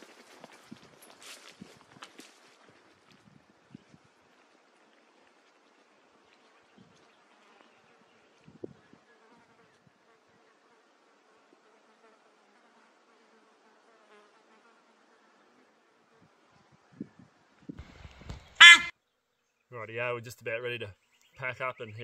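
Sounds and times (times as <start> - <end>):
faint bush sounds: 0.0 - 22.0
fly buzzing close by: 6.7 - 17.0.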